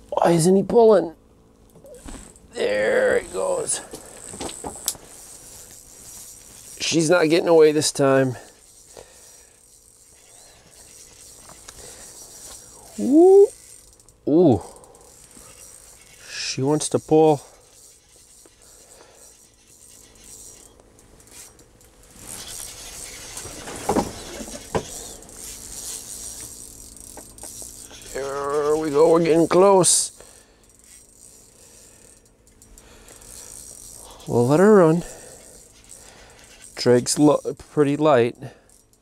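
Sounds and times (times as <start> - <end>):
fishing reel rattling and clicking: 1.7 - 39.0
man's wordless exclamations: 13.0 - 13.5.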